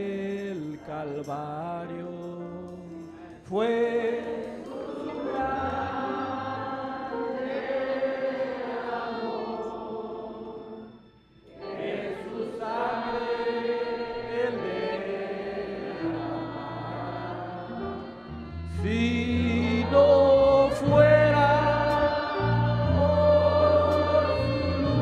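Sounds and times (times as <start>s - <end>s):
man singing over a microphone: 0.0s - 6.2s, 18.7s - 25.0s
congregation singing a hymn: 0.0s - 25.0s.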